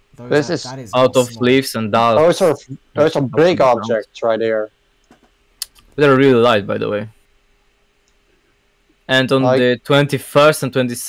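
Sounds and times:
faint steady hum: 0.0s - 11.0s
person speaking: 0.1s - 4.6s
faint clicks: 8.0s - 9.0s.

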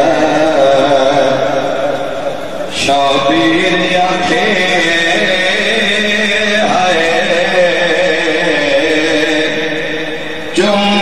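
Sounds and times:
men chanting: 0.0s - 2.0s, 2.7s - 11.0s.

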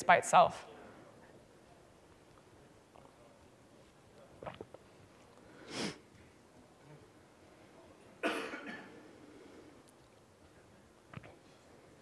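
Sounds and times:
person coughing: 8.2s - 9.0s.

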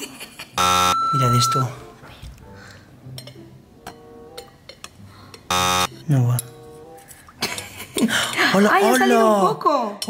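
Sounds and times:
electronic buzzer: 0.6s - 1.3s, 5.5s - 5.9s.

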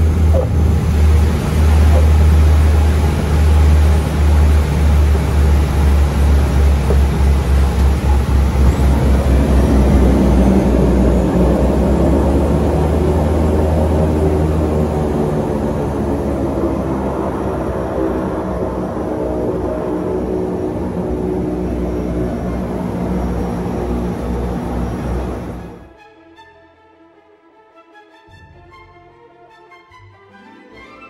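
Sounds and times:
propeller plane engines rumbling: 0.0s - 25.9s
steady droning tones: 0.0s - 25.9s.

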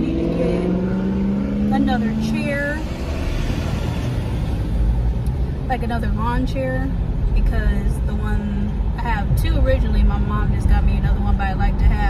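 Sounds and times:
car road and engine rumble: 0.0s - 12.0s.

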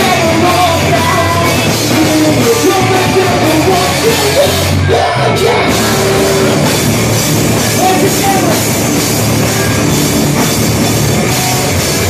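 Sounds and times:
live pop-punk band: 0.0s - 12.0s.

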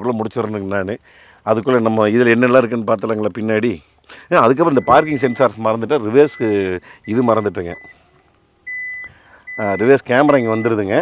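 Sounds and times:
high electronic beep: 4.7s - 5.6s, 6.2s - 8.0s, 8.7s - 11.0s.

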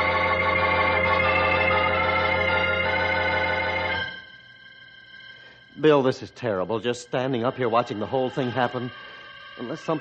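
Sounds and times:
faint high ringing tones: 0.0s - 10.0s
organ chord with deep bass: 0.0s - 10.0s.

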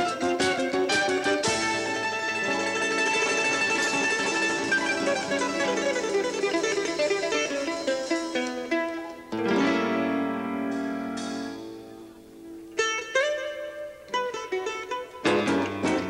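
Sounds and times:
live band accompaniment: 0.0s - 13.4s, 15.1s - 16.0s
electric mandolin plucked runs: 0.0s - 16.0s.

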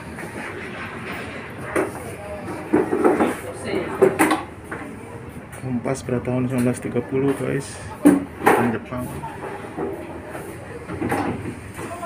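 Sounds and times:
faint chatter of voices: 0.0s - 12.0s.

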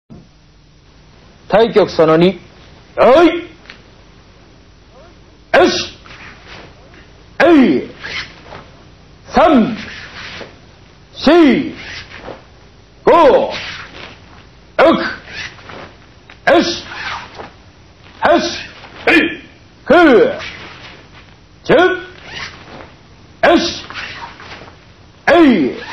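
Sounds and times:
room hiss: 0.1s - 25.9s
man shouting: 5.6s - 6.0s, 7.4s - 7.9s, 13.1s - 13.5s, 14.8s - 15.2s, 16.5s - 16.9s, 18.2s - 20.4s, 21.7s - 22.2s, 23.4s - 23.8s, 25.3s - 25.8s.

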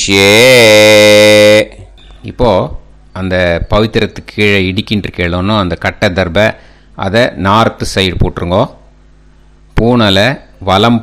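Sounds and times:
man chanting: 0.0s - 8.7s
man speaking syllable: 0.0s - 8.8s.

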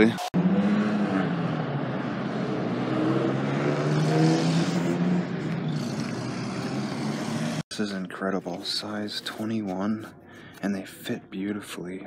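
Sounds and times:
traffic noise: 0.0s - 12.0s.

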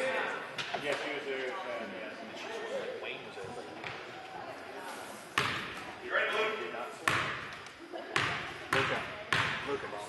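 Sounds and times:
faint background talk: 0.0s - 10.0s
basketball bouncing on wooden floor: 5.4s - 5.7s, 8.2s - 9.6s.

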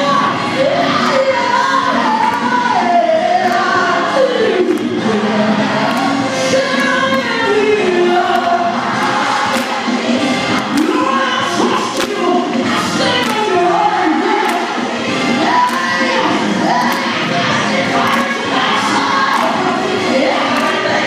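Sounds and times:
woman singing into microphone: 0.0s - 9.7s, 10.7s - 21.0s
drums: 4.7s - 21.0s.

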